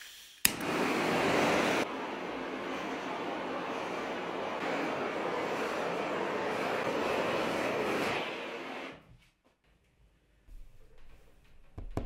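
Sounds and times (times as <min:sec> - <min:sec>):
torch flame hissing: 0:00.0 - 0:09.0
torch ignition click: 0:00.4 - 0:00.9.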